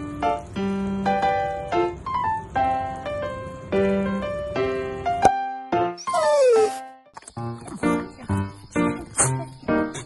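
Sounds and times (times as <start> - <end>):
dog-like yelp falling in pitch: 6.0 - 6.8.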